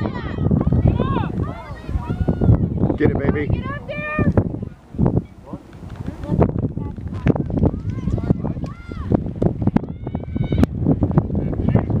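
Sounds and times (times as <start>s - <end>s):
wind rumble on microphone: 0.0s - 12.0s.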